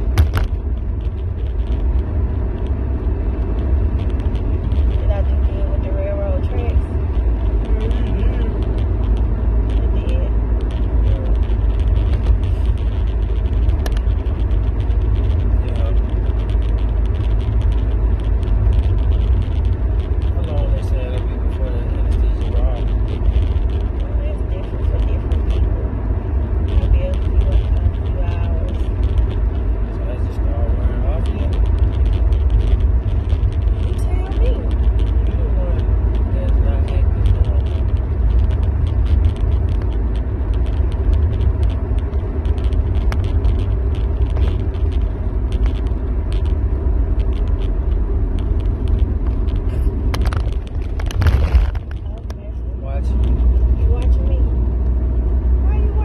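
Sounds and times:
car cabin road and engine rumble: 0.0s - 56.0s.

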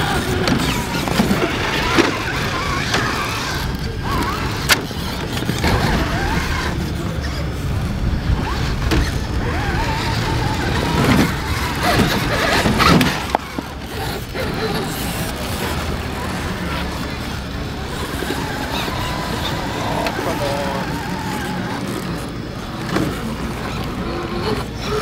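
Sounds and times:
constant low rumble: 0.0s - 25.0s
electric motor whining: 0.0s - 25.0s.

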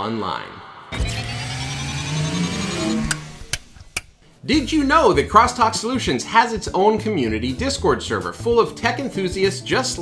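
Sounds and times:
synthetic rising swell: 0.0s - 4.2s.

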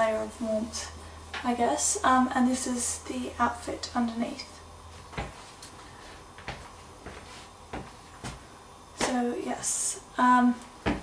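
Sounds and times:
soft footsteps on wooden floor: 4.9s - 8.5s, 10.6s - 11.0s.

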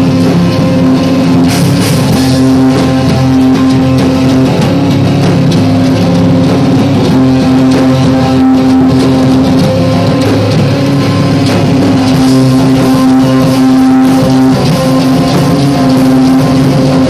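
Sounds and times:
distorted electric guitars: 0.0s - 17.0s
drum kit and cymbals: 0.0s - 17.0s.

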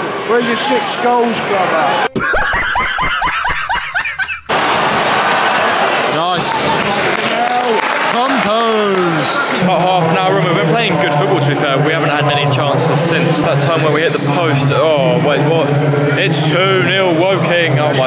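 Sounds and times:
football crowd shouting and chanting: 0.0s - 2.2s, 4.4s - 18.0s
man laughing: 2.1s - 4.5s.

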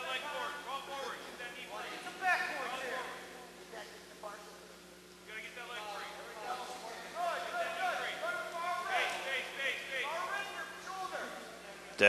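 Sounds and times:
faint steady hum: 0.0s - 12.0s
distant voices shouting: 7.0s - 11.6s.

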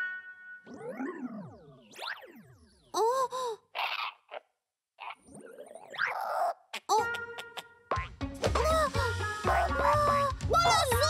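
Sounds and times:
breathy gasps and sighs: 3.0s - 3.8s.

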